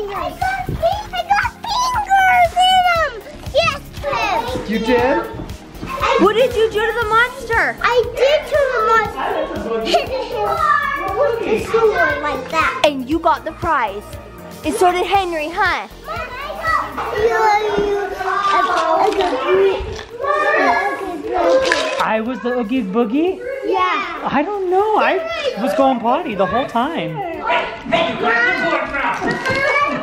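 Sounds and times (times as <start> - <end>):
children's excited voices: 0.0 - 30.0
music playing: 0.0 - 30.0.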